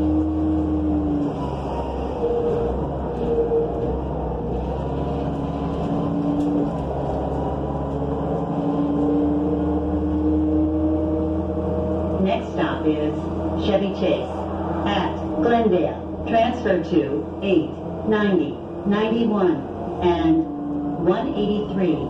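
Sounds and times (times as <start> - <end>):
bus engine hum: 0.0 - 22.0.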